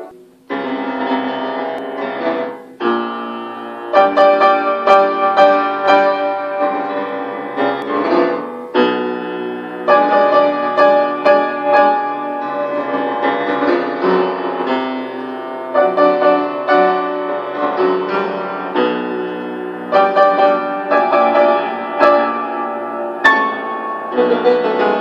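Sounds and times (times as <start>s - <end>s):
solo upright piano: 0.0s - 25.0s.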